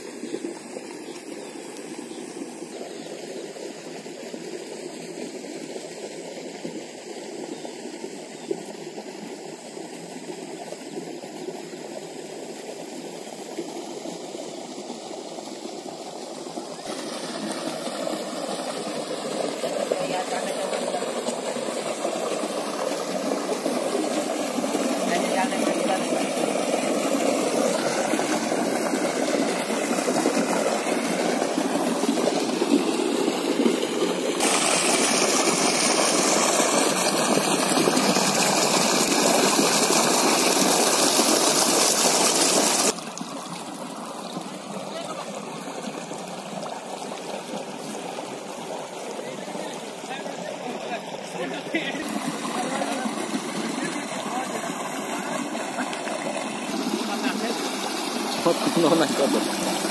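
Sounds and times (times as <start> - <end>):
water rushing into a pit: 0.0 - 59.9.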